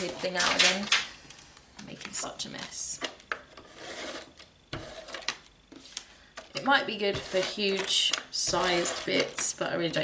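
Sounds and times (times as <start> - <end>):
tape dispenser rattling: 7.2 - 9.5.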